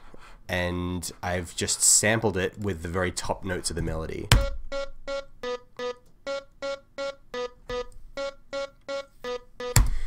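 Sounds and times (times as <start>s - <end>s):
synth melody: 4.4s - 9.8s.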